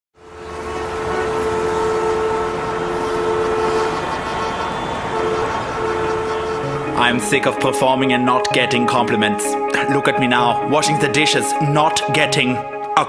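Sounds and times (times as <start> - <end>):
steady background noise: 0.2 - 7.1
held horn-like tone: 0.2 - 8.9.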